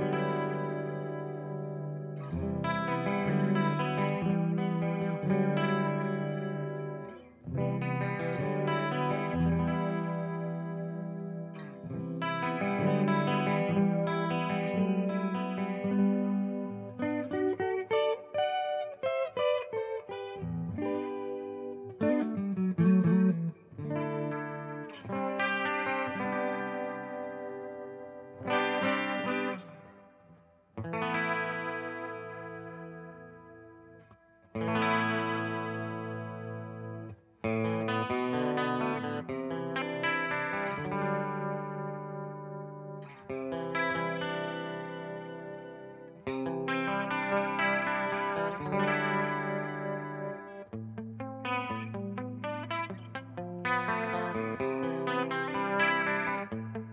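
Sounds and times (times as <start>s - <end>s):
electric guitar with flanger: 0.0s - 56.9s.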